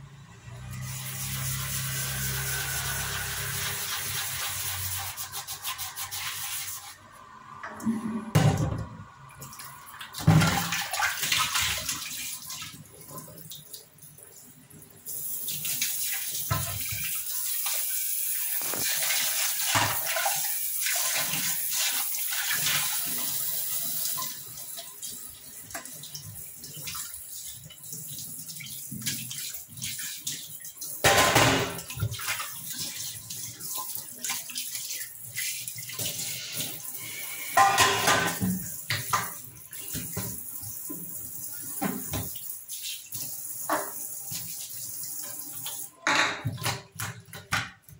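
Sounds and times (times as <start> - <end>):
tap water splashing on metal: 8.4 - 13.9, 15.5 - 36.8, 37.5 - 47.9.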